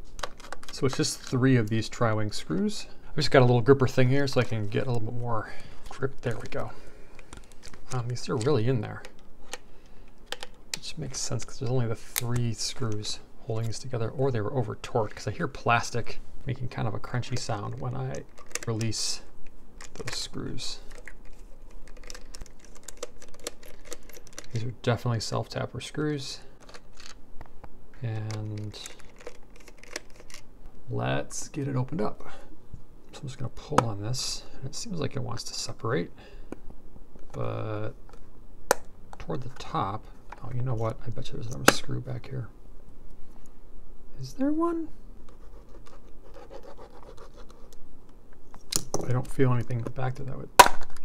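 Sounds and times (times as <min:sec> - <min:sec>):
screwdriver scratching plastic: 0:45.4 - 0:47.8.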